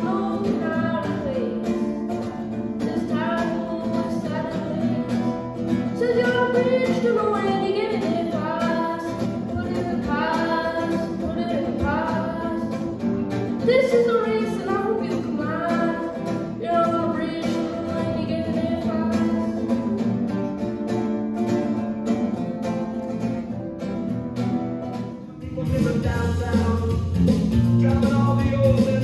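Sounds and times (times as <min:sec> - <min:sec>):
boy singing into a microphone: 0:00.0 - 0:20.0
acoustic guitar: 0:00.0 - 0:29.0.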